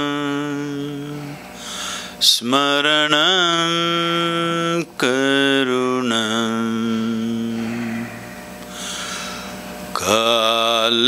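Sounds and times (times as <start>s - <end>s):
quick breath in: 7.7s - 9.7s
man chanting: 10.0s - 11.0s.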